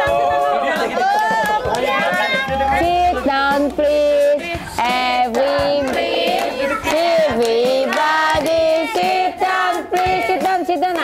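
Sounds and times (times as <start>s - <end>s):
high child-like singing voice: 4.5s - 9.3s.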